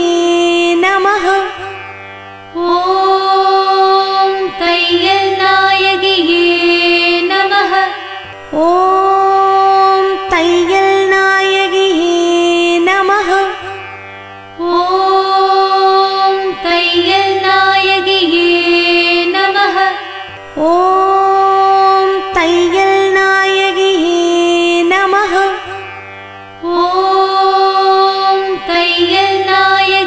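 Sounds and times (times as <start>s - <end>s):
devotional music: 0.0s - 30.0s
person singing long steady note: 0.0s - 30.0s.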